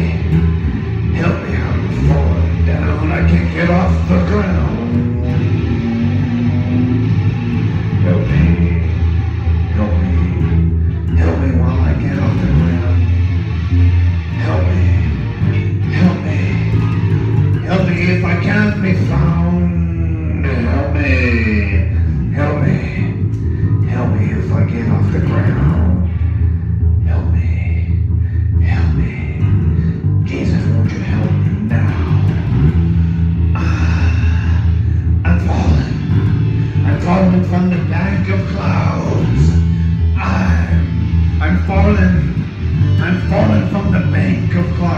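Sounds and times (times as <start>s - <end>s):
bass guitar groove: 0.0s - 44.9s
electric guitar: 0.0s - 44.9s
harmonica phrases: 0.0s - 44.9s
person singing: 14.3s - 26.1s, 33.5s - 36.2s.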